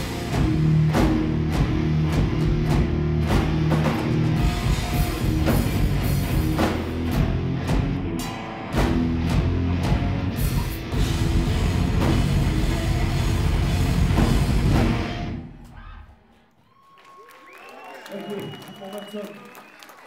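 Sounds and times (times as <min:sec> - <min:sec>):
punk band playing: 0:00.0 - 0:15.7
crowd shouting and cheering: 0:00.0 - 0:20.0.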